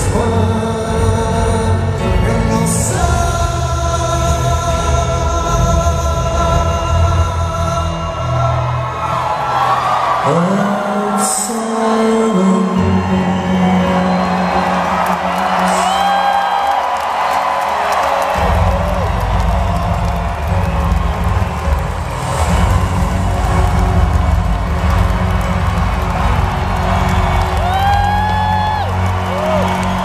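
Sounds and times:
crowd cheering and whooping: 8.0s - 30.0s
rock band playing: 18.2s - 30.0s.

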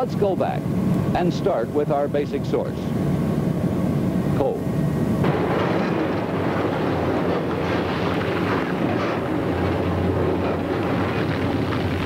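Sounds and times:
excavator mechanical rumble: 0.0s - 12.0s
low hum: 0.0s - 12.0s
irregular machinery clatter: 5.2s - 12.0s.

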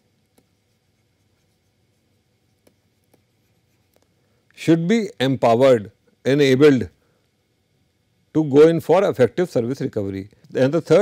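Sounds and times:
stylus writing on a tablet: 0.0s - 4.0s.

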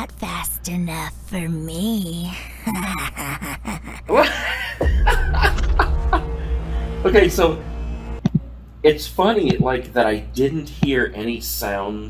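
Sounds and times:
man laughing: 2.7s - 6.2s
low rumble: 4.8s - 8.6s.

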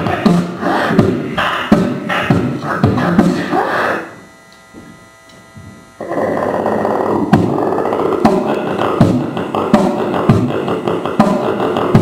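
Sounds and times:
beatboxing through microphone: 0.0s - 4.3s, 6.0s - 12.0s
faint hum: 0.0s - 12.0s.

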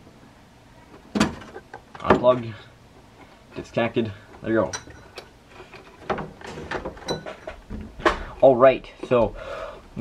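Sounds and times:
wires clicking and rustling: 0.8s - 10.0s.

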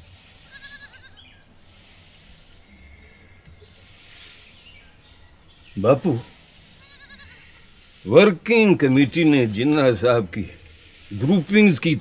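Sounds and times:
hand broom sweeping floor: 0.0s - 2.7s, 3.6s - 5.0s, 5.6s - 12.0s.

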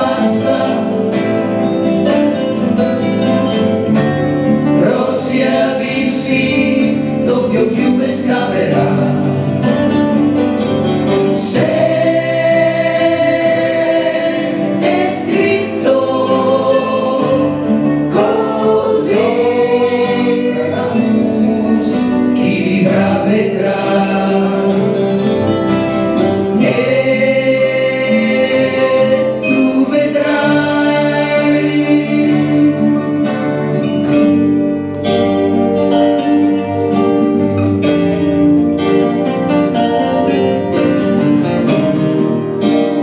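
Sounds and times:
voices singing in harmony: 0.0s - 2.6s, 4.6s - 10.1s, 11.0s - 34.0s
guitar accompaniment: 0.0s - 43.0s.

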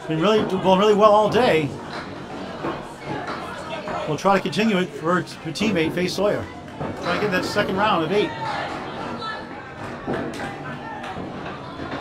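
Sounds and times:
bowling balls rolling on wooden lanes: 0.0s - 12.0s
faint voices: 0.0s - 12.0s.

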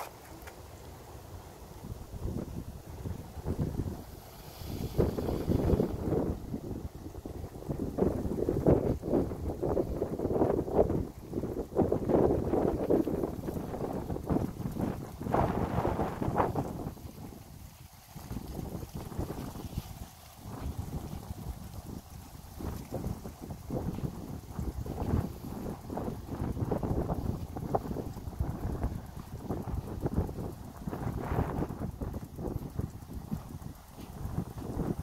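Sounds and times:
wind buffeting microphone: 1.7s - 35.0s.

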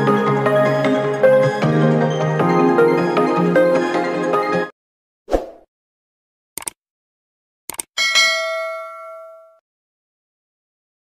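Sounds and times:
notification bell ding: 8.0s - 9.6s.

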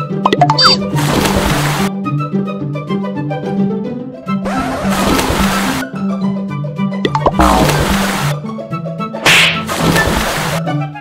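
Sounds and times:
background music: 0.0s - 11.0s
churning water: 0.3s - 1.9s, 4.5s - 6.0s, 7.1s - 8.5s, 9.2s - 10.7s
loud splash into water: 9.2s - 10.6s.

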